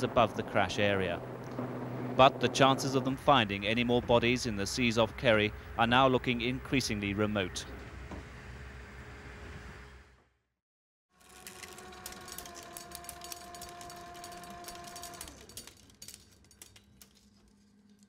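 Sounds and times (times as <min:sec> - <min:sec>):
steady noise: 0:00.0 - 0:06.4
film reel whirring: 0:11.2 - 0:17.3.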